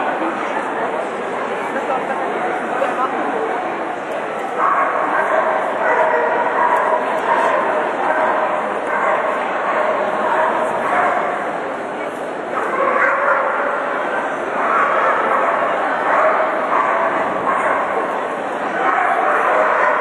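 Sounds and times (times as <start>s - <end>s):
crowd noise and voices: 0.0s - 20.0s
dog barking: 4.6s - 11.4s, 12.6s - 13.9s, 14.6s - 18.2s, 18.8s - 20.0s.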